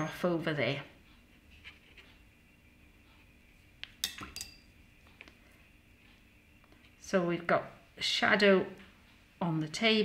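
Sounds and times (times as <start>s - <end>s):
faint room hum: 0.0s - 10.0s
paintbrush clinking: 4.0s - 4.7s.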